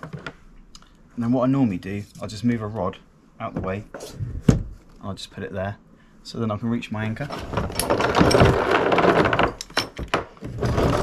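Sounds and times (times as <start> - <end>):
anchor chain rattling: 7.3 - 10.0.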